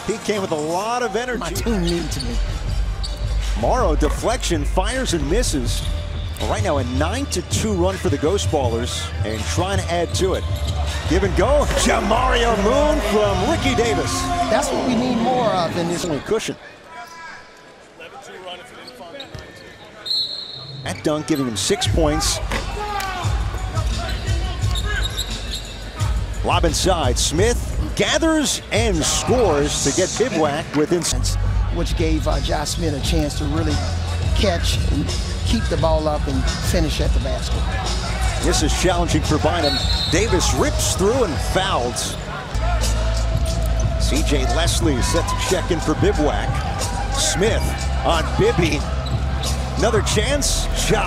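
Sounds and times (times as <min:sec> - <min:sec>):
arena music with deep bass: 0:01.3 - 0:15.5, 0:31.2 - 0:51.0.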